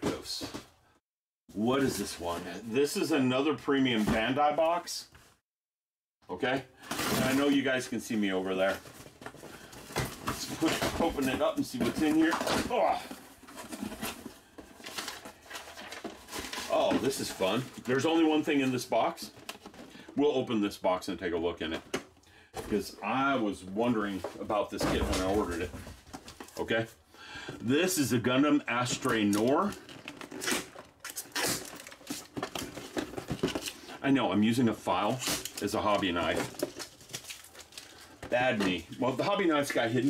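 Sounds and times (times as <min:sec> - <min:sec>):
plastic wrap crinkling and tearing: 0:29.0 - 0:33.8, 0:35.0 - 0:38.2.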